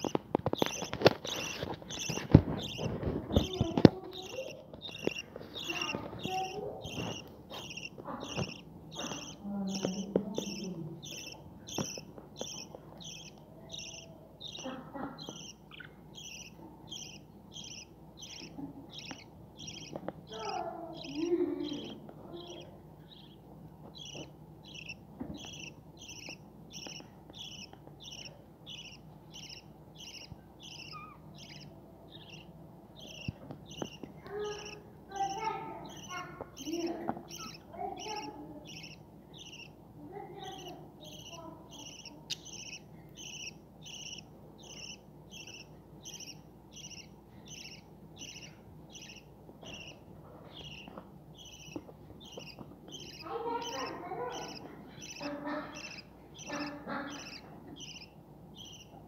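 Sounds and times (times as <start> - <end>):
budgerigar chicks begging calls: 0.0 - 59.0.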